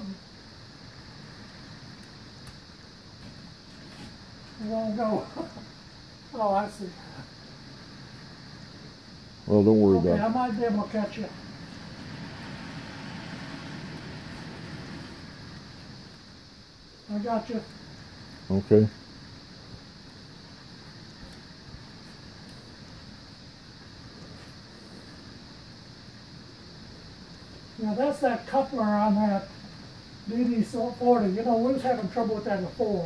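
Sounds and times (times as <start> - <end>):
model train cars rolling: 9.5 - 16.2.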